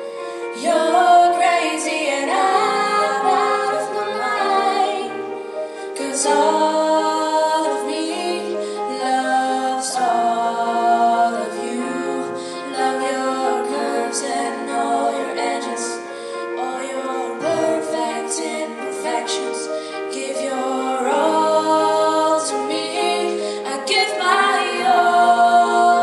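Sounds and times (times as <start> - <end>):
grand piano: 0.0 - 26.0
woman singing a pop ballad: 16.6 - 26.0.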